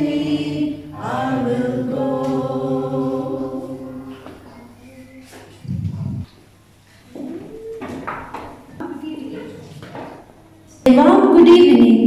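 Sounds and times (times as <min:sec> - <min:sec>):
girls singing in unison: 0:00.0 - 0:04.4
indistinct voices: 0:00.0 - 0:06.3.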